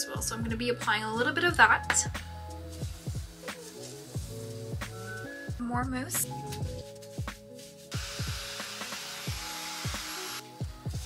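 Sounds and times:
background music with steady beat: 0:00.0 - 0:11.0
hair dryer blowing: 0:07.9 - 0:11.0.

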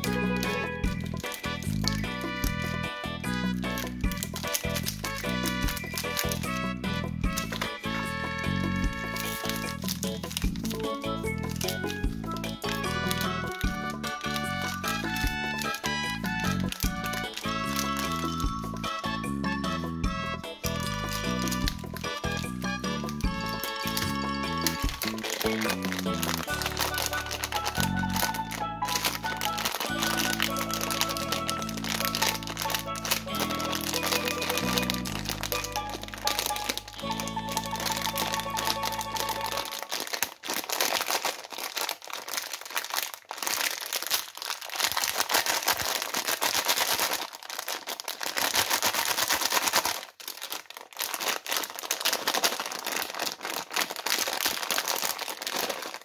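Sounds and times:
background music: 0:00.0 - 0:40.2
plastic bag crinkling: 0:00.0 - 0:56.0.

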